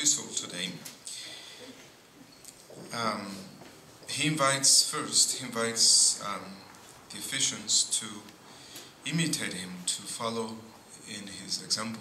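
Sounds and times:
man speaking in echoing room: 0.0s - 1.8s, 2.7s - 12.0s.

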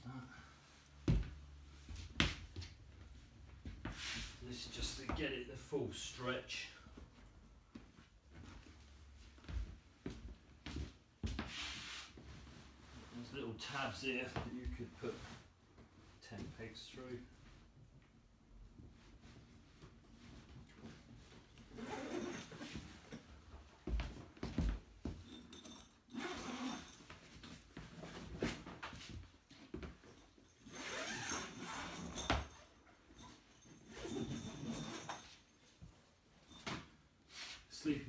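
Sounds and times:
canvas fabric rustling: 18.7s - 35.6s.

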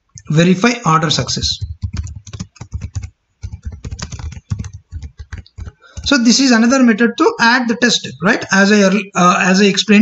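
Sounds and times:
computer keyboard typing: 1.4s - 6.6s.

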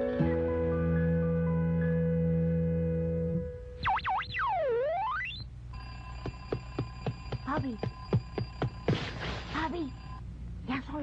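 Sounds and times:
cartoon swooping whistle tone: 3.8s - 5.4s.

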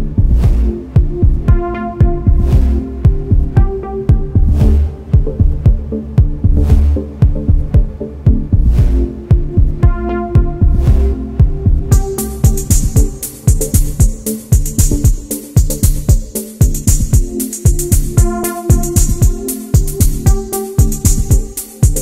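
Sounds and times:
melodic techno track: 0.0s - 22.0s.

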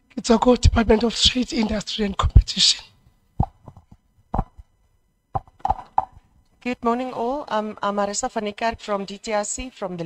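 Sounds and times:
microphone handling knocks: 3.4s - 4.7s.

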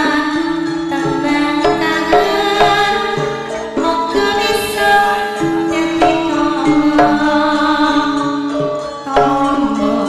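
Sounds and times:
bronze metallophone notes ringing: 0.0s - 10.0s.

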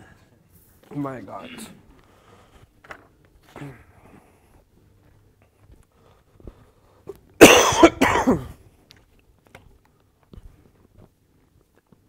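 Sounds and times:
man coughing: 7.4s - 8.6s.

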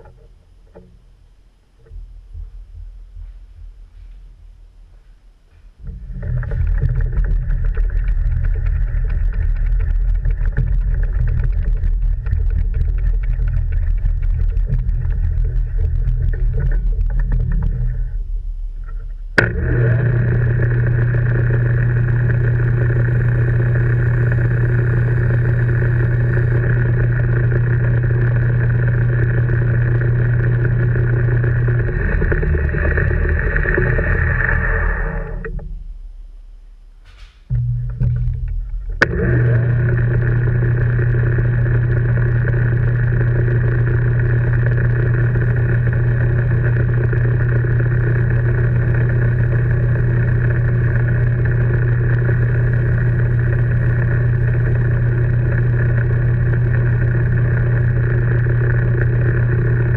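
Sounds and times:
lathe motor whirring: 5.8s - 18.2s, 18.8s - 35.6s, 38.4s - 59.9s.

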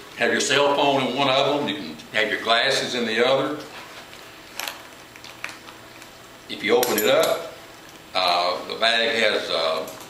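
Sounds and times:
metal hardware clicking: 6.8s - 7.4s.

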